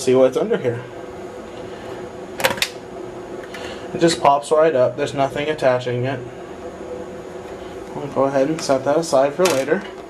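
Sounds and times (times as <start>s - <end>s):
laptop case popping free clicks: 2.4s - 2.8s.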